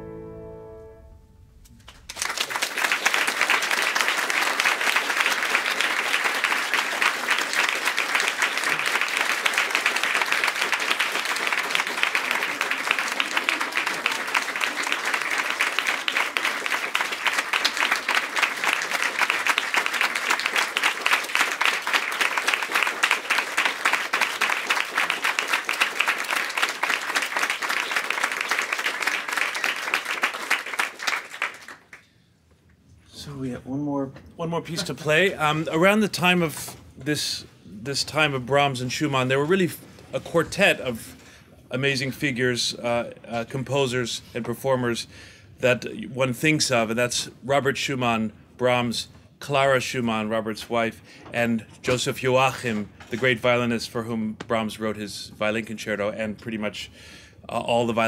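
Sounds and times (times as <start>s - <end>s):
audience applauding: 1.8s - 32.0s.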